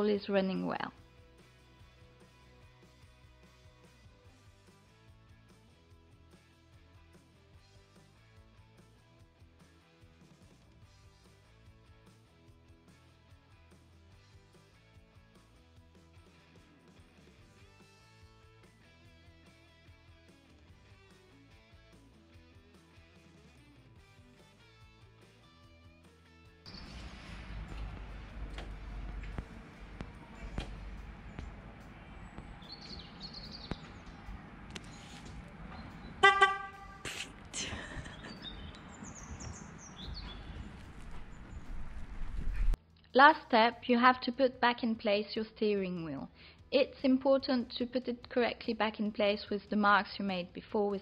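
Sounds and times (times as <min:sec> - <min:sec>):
faint background music: 0:00.0 - 0:42.0, 0:42.7 - 0:51.0
low rumble: 0:26.7 - 0:42.8
car horn toot: 0:36.0 - 0:37.1.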